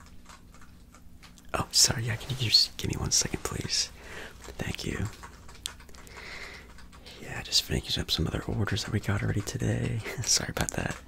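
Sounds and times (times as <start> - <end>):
typing on computer keyboard: 0.0 - 1.6, 3.0 - 11.0.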